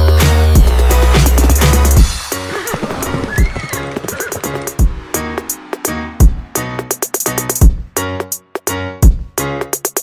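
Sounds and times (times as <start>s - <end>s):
background music: 0.0s - 10.0s
horse whinny: 2.2s - 5.0s.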